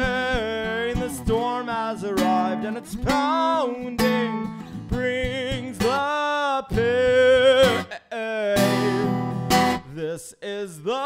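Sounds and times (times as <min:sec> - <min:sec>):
acoustic guitar strumming: 0:00.0 - 0:09.9
man singing: 0:00.0 - 0:11.0.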